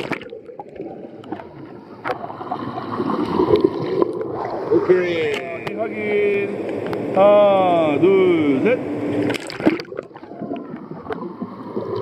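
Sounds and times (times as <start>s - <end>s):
bubbling underwater: 0.0s - 4.9s, 9.3s - 12.0s
person plunging into water: 0.0s - 4.9s, 9.2s - 10.7s.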